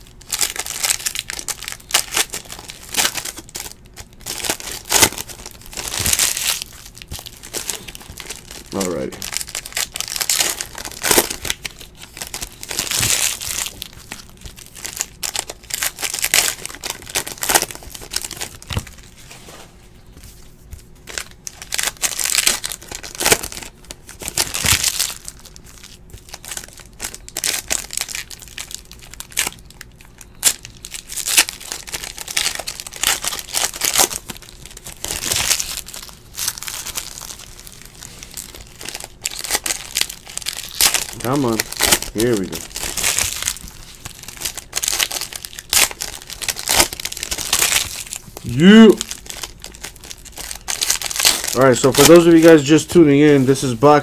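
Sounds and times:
plastic wrappers crinkling: 0:00.0 - 0:54.0.

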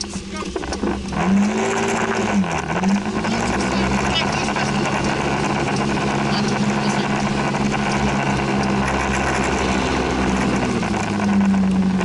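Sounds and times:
scooter engine accelerating: 0:00.0 - 0:12.0
wet road noise: 0:00.0 - 0:12.0.

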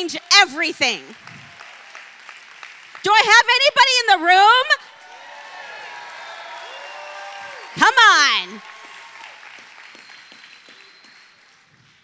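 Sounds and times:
congregation applauding: 0:00.0 - 0:04.2, 0:04.8 - 0:12.0.

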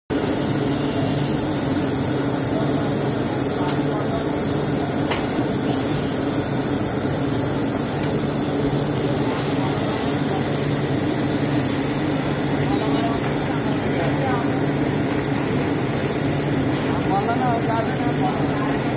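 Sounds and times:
factory machinery drone: 0:00.1 - 0:18.9
high machine whine: 0:00.1 - 0:18.9.

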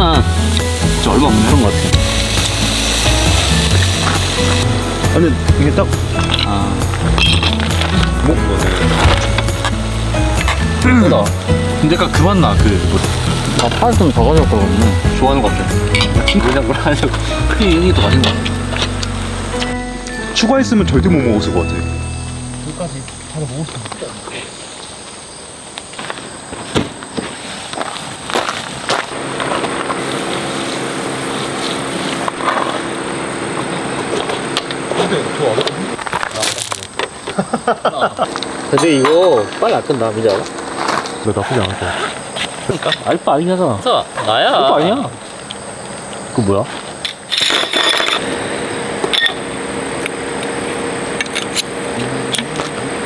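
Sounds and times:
insects singing: 0:00.0 - 0:53.0.

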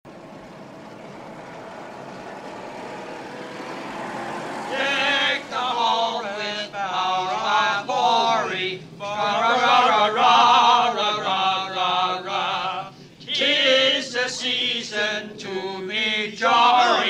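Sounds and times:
steady hum: 0:00.1 - 0:17.0
voices chanting: 0:00.6 - 0:17.0.

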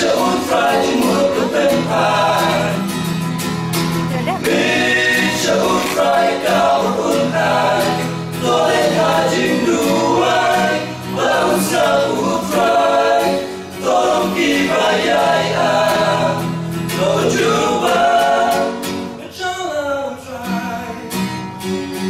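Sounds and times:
male choir singing gospel: 0:00.0 - 0:20.8.

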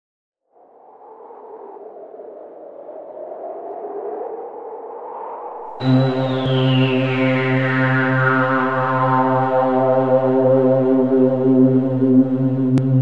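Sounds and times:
high whine falling in pitch: 0:05.6 - 0:13.0
buzzy synthesizer tone: 0:05.8 - 0:13.0
whooshing synthetic drone: 0:05.8 - 0:13.0.

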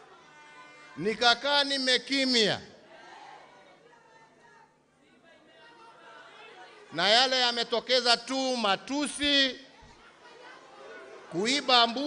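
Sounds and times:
murmur of voices in a hall: 0:00.0 - 0:12.0
man's amplified voice: 0:01.0 - 0:02.8, 0:06.9 - 0:09.7, 0:11.3 - 0:12.0.

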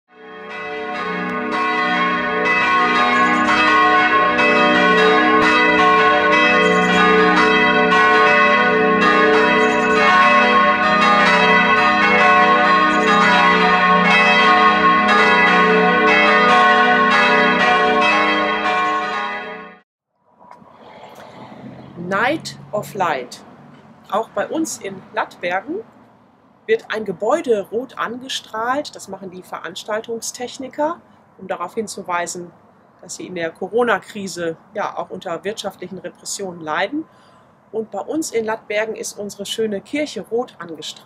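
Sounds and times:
church bells ringing: 0:00.1 - 0:19.8
faint outdoor background: 0:00.1 - 0:41.0.

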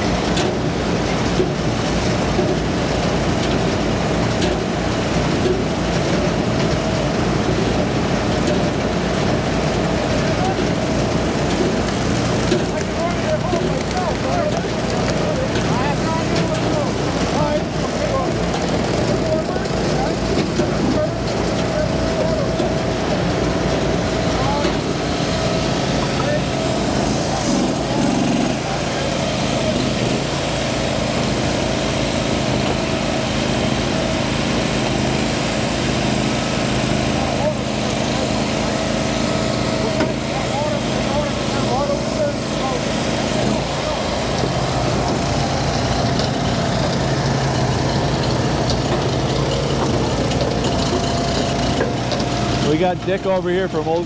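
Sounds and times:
small gasoline engines running: 0:00.0 - 0:54.0
people talking: 0:09.9 - 0:23.2, 0:24.0 - 0:30.1, 0:37.1 - 0:45.3, 0:52.6 - 0:54.0.

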